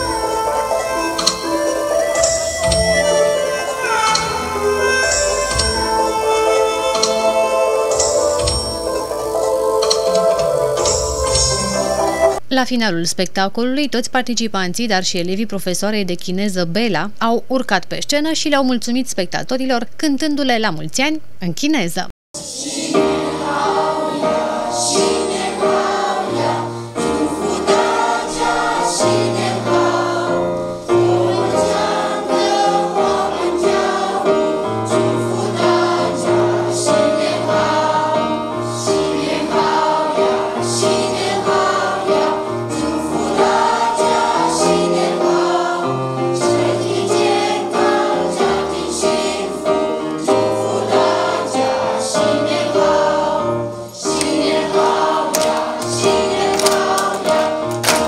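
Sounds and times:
group of people singing: 0.0s - 12.4s, 22.4s - 58.0s
hand-clapping: 55.3s - 58.0s.

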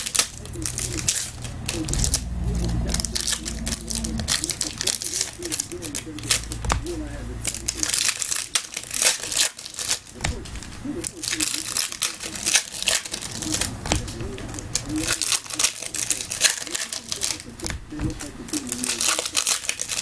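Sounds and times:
cards being handled: 0.0s - 20.0s
foil wrappers crinkling and tearing: 0.0s - 20.0s.

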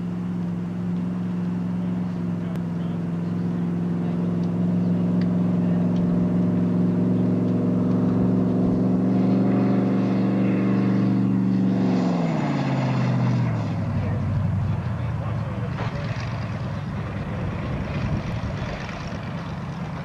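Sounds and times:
engine running at steady revs: 0.0s - 20.0s.

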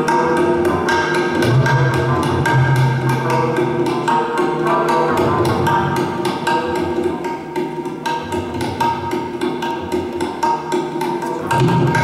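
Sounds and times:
tabla fast strokes: 0.0s - 12.0s.

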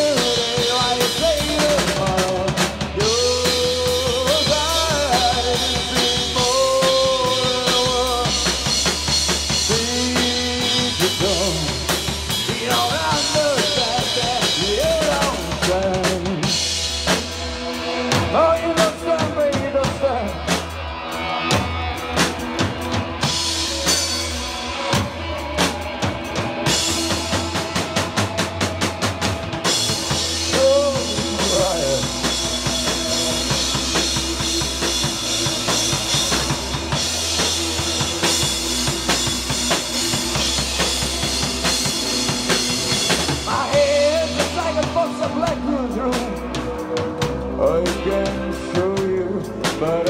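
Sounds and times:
bass guitar: 0.0s - 50.0s
drum kit: 0.0s - 50.0s
electric guitar lead line: 0.0s - 50.0s.

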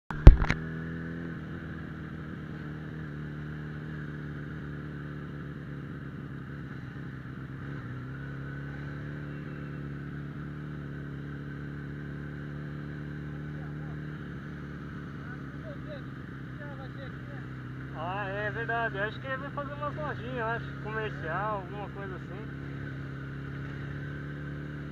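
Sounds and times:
motorcycle engine cruising: 0.1s - 24.9s.

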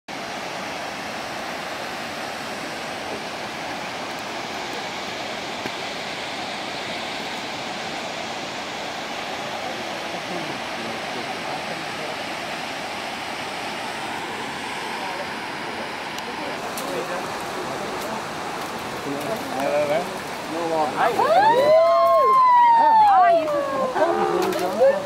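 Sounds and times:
waterfall rushing: 0.1s - 25.0s.

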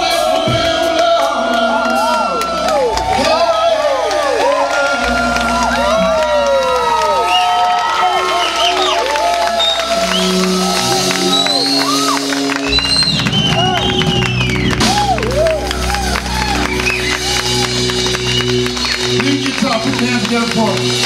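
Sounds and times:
audience cheering and whooping: 0.0s - 21.0s
live band playing sustained chords: 0.0s - 21.0s.

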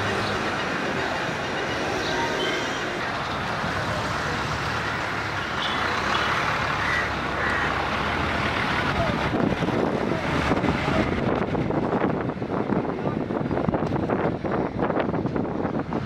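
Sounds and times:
diesel bus engines running: 0.0s - 16.0s
people talking: 8.3s - 11.4s.

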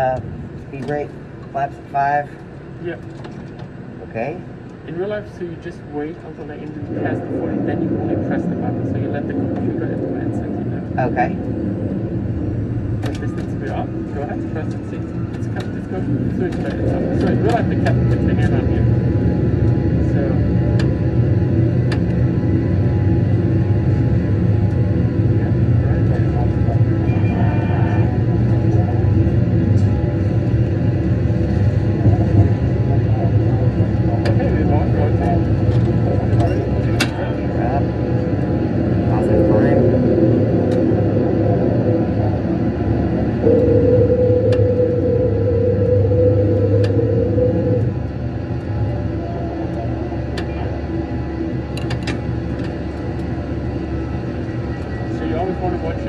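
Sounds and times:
jet engine rumble: 0.0s - 56.0s
steady tone: 4.9s - 56.0s.

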